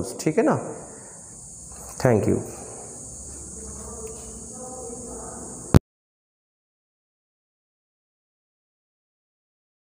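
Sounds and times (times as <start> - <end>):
faint low hum: 0.0 - 5.8
high-pitched hiss: 0.0 - 5.8.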